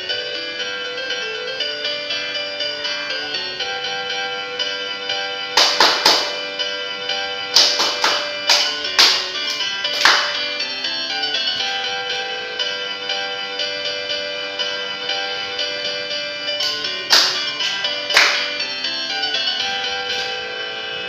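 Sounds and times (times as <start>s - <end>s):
folk dance music: 4.3s - 13.0s, 14.7s - 21.0s
sharp hand claps: 5.6s - 6.4s, 7.5s - 10.5s, 16.6s - 18.6s.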